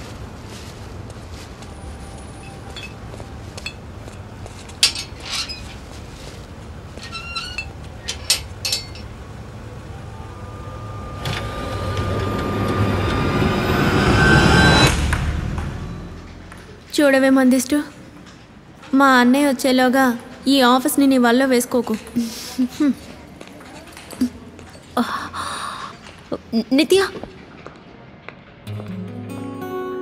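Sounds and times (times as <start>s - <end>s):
car engine rumbling: 0.0s - 16.9s
rising swell of noise: 9.4s - 16.5s.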